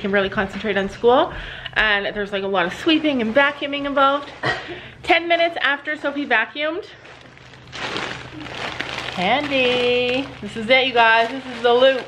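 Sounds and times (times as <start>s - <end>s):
candy bag rustling and crinkling: 5.6s - 12.0s.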